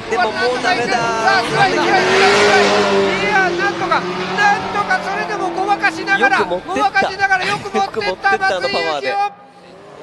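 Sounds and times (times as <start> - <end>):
car engine at high revs: 0.0 - 10.0.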